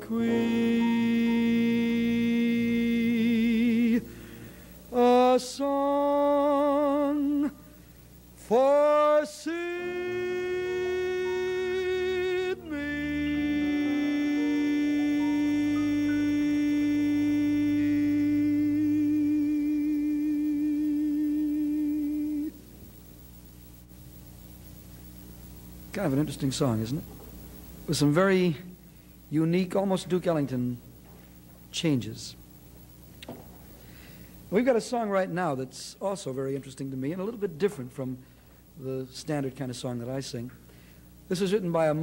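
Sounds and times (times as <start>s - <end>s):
man singing with vibrato: 0.0s - 4.2s, 4.9s - 7.7s, 8.4s - 22.6s
jazz trio playing quietly: 12.6s - 18.7s.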